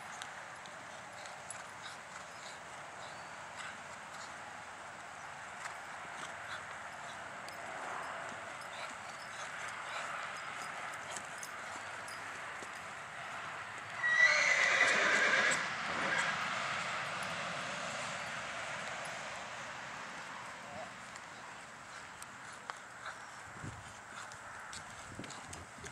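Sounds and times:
hoofbeats on sand: 0:00.0 - 0:13.9, 0:21.1 - 0:25.9
horse whinnying: 0:14.0 - 0:16.3.

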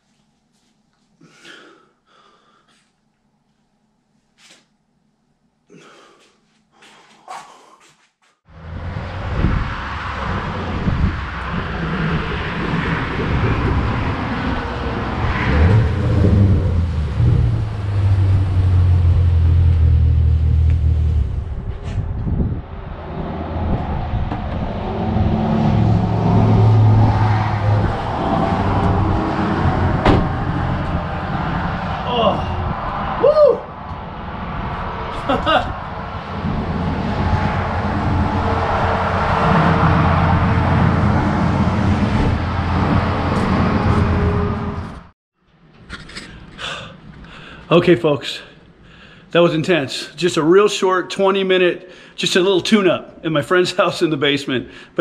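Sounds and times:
faint heavy breathing: 0:01.2 - 0:02.9, 0:05.7 - 0:08.2, 0:46.2 - 0:47.7
road hum: 0:08.4 - 0:50.4
wind buffeting microphone: 0:08.7 - 0:19.5, 0:20.7 - 0:44.5.

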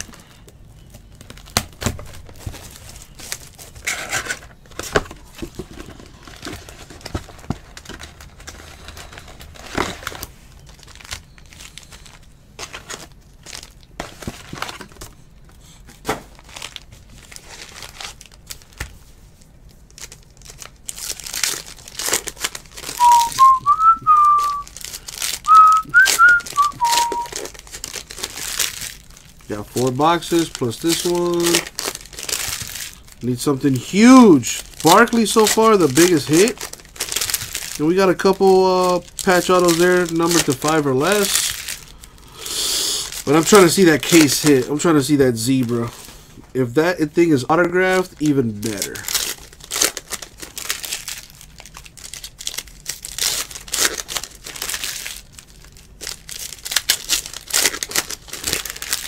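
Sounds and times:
card packs tearing open: 0:00.0 - 0:15.2, 0:16.0 - 0:19.0, 0:19.8 - 0:46.1, 0:47.5 - 0:59.0
wrappers crinkling: 0:00.0 - 0:59.0
person whistling: 0:23.0 - 0:24.7, 0:25.5 - 0:27.4.

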